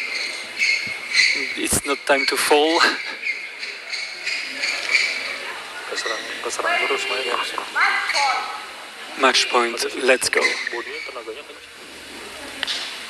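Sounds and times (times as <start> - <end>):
indistinct voices in a hall: 0.0 - 13.0.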